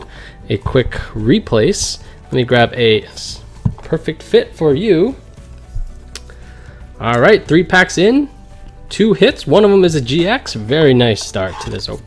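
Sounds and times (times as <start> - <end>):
faint background music: 0.0 - 12.0
plastic card sleeve rustling: 4.8 - 6.5.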